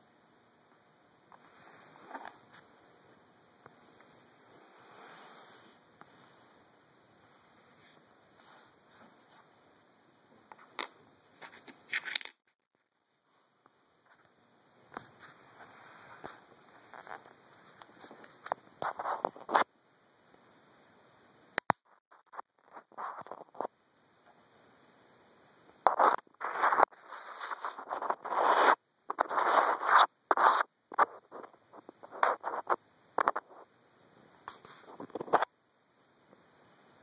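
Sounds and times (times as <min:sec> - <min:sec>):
fingertips scratching on microphone: 0:15.0 - 0:19.7, 0:22.1 - 0:23.7, 0:25.9 - 0:33.7.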